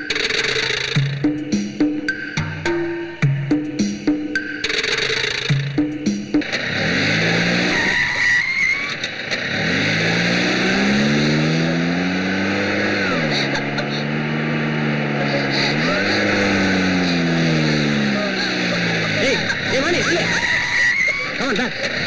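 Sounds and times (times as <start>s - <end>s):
van engine revving high: 6.4s - 22.0s.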